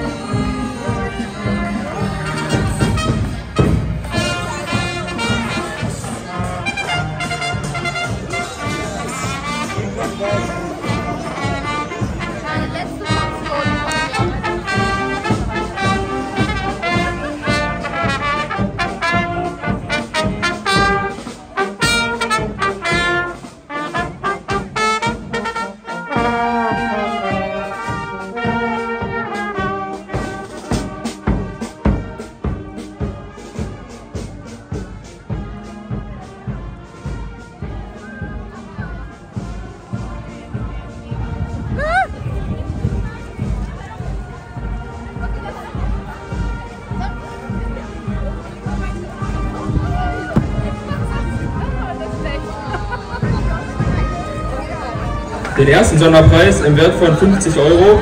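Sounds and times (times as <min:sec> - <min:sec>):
marching brass band playing: 0:00.0 - 0:58.0.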